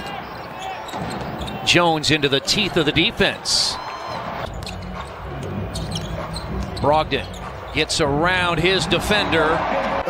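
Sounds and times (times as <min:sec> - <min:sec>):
low arena hum: 0:00.1 - 0:10.0.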